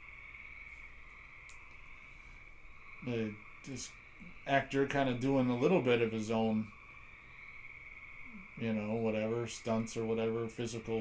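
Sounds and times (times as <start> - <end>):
steady high-pitched whine: 0.0 - 11.0.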